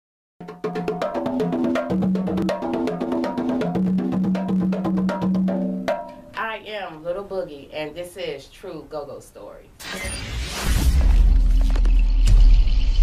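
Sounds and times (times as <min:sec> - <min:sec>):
conga drums played by hand: 0:00.4 - 0:06.4
woman speaking: 0:06.4 - 0:09.8.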